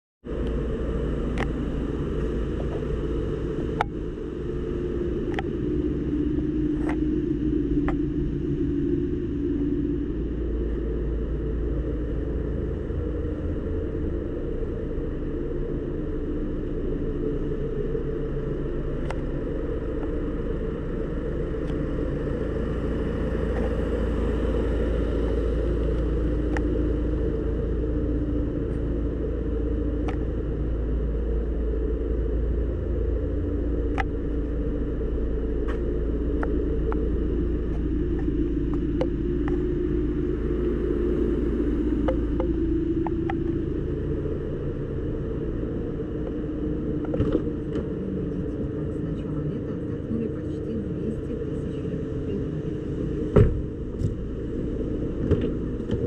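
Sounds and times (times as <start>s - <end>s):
car engine idling: 0.3s - 56.0s.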